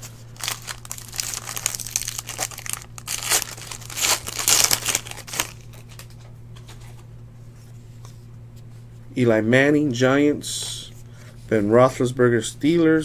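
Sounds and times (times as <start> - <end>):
foil wrapper tearing and crinkling: 0.4 - 6.1.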